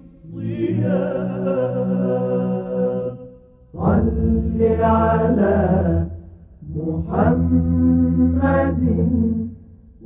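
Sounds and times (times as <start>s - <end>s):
chanted vocal music: 0.0s - 10.0s.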